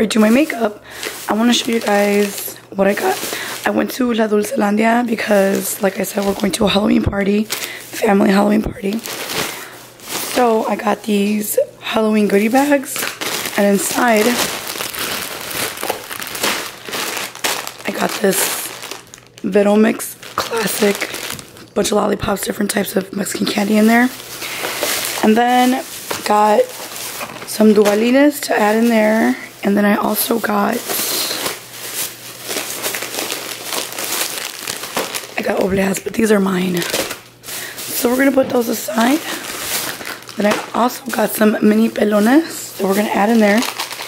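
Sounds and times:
plastic bags rustling and crinkling: 0:00.0 - 0:44.0.

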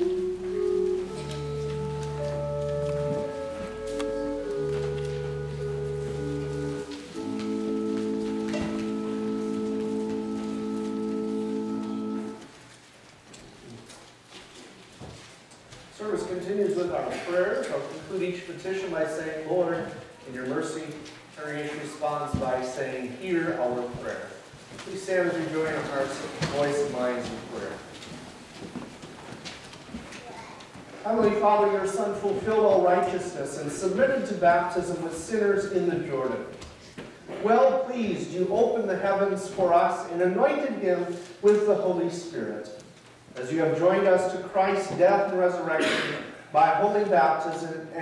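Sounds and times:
organ playing slow chords: 0:00.0 - 0:12.7
footsteps: 0:00.0 - 0:39.7
shuffling: 0:00.0 - 0:45.6.

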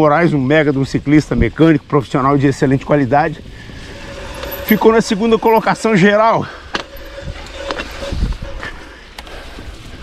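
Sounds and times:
bike tyres rolling on dirt: 0:00.0 - 0:10.0
wind noise: 0:00.8 - 0:10.0
low rumble: 0:02.6 - 0:10.0.

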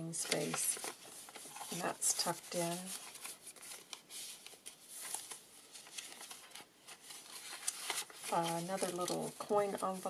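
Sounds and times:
paper rustling: 0:00.0 - 0:10.0.

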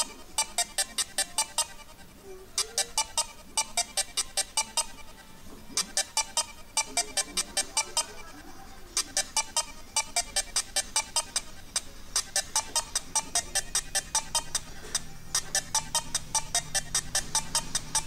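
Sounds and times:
chiptune music through laptop speaker: 0:00.0 - 0:18.0.

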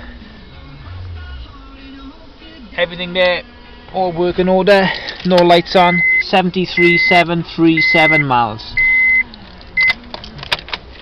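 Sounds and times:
car warning chime beeping: 0:05.6 - 0:10.0.

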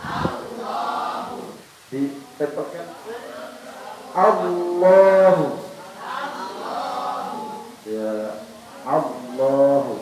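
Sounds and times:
several voices repeating together: 0:00.0 - 0:10.0
person chanting recitation: 0:03.4 - 0:10.0.

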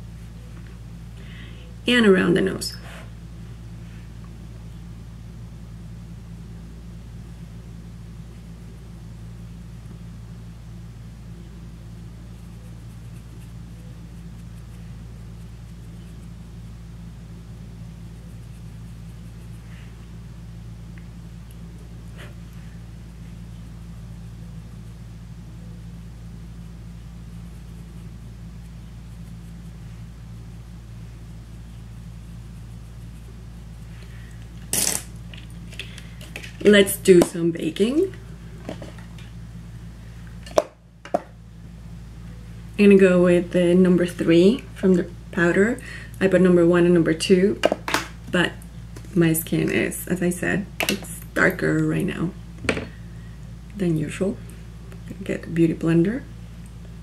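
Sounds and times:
low mechanical hum: 0:00.0 - 0:57.0.

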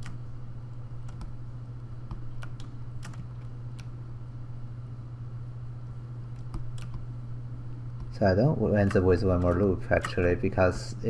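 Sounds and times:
steady low hum: 0:00.0 - 0:11.0
keyboard and mouse clicks: 0:01.0 - 0:01.4, 0:02.1 - 0:03.9, 0:06.4 - 0:07.0, 0:08.8 - 0:10.2.

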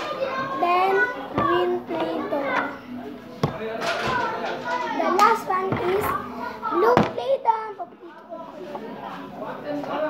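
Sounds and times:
young child talking: 0:00.0 - 0:02.8, 0:04.8 - 0:08.1
plastic tubs knocking: 0:05.6 - 0:06.1.

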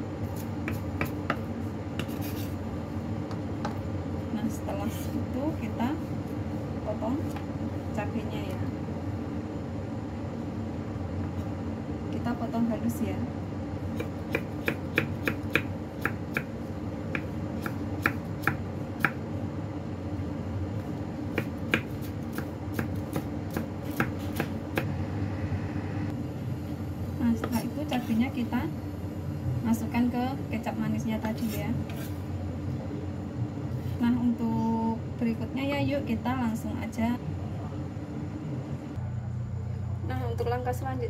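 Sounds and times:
knife chopping on wooden board: 0:00.4 - 0:02.5, 0:14.0 - 0:16.5, 0:21.3 - 0:24.9.

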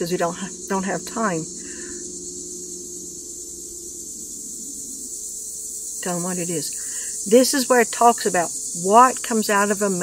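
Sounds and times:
insects calling: 0:00.0 - 0:10.0.

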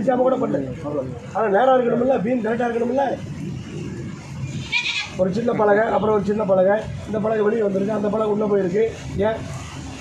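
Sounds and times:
background talk: 0:00.0 - 0:09.8
high-pitched animal call: 0:04.5 - 0:05.2.

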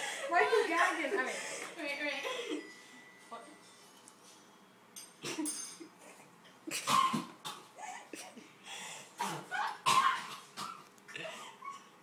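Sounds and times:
person coughing and gagging: 0:06.7 - 0:08.5, 0:09.2 - 0:11.6.

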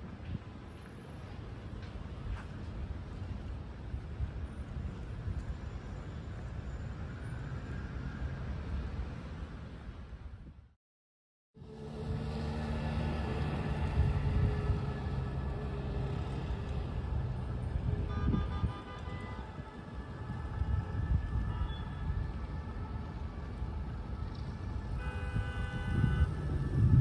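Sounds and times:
low rumble of traffic: 0:00.0 - 0:10.8, 0:11.6 - 0:27.0
motorcycle and car engines passing: 0:11.6 - 0:18.1, 0:24.1 - 0:27.0.

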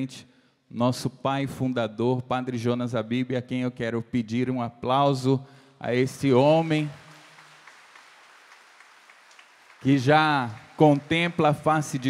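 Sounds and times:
audience applauding: 0:06.2 - 0:12.0.

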